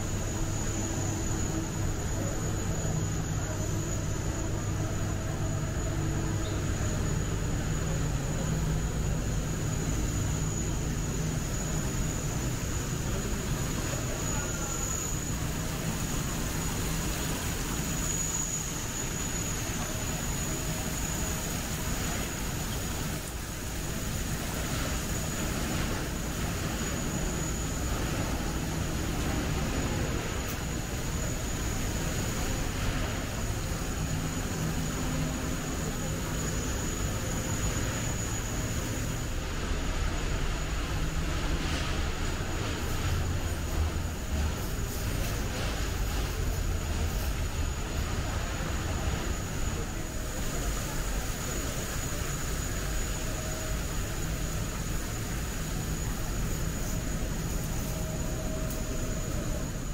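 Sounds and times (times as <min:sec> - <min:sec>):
even hiss: 0:00.0 - 0:59.9
faint high whine: 0:00.0 - 0:59.9.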